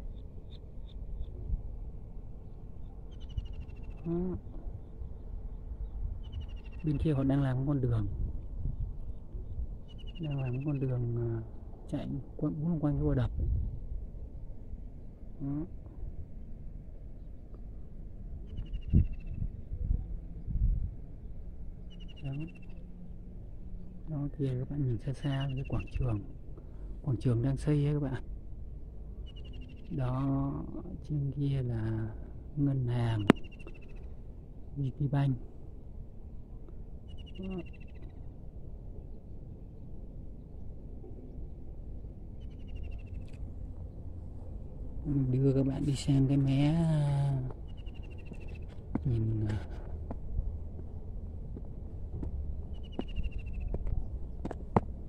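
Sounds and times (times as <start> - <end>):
low rumbling on microphone: 0.0 - 10.3, 10.9 - 14.4, 18.4 - 21.7, 37.3 - 55.0
wind on microphone: 7.8 - 9.9, 13.0 - 14.1, 18.5 - 21.0
bird call trill: 37.1 - 38.2, 52.7 - 53.7.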